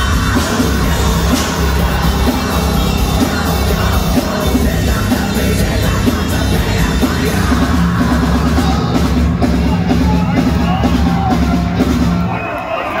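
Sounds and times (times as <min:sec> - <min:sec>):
heavy drums: 0:00.0 - 0:13.0
metal band playing live: 0:00.0 - 0:13.0
yelled vocals: 0:00.0 - 0:13.0.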